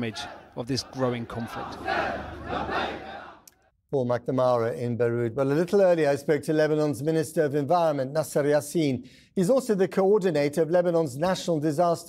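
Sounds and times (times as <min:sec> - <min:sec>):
crowd of men shouting: 0:00.0 - 0:03.4.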